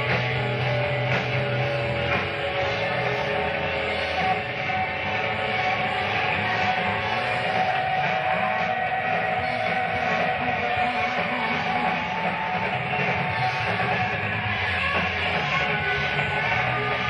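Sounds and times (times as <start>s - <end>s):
rock band playing slow drone: 0.0s - 17.0s.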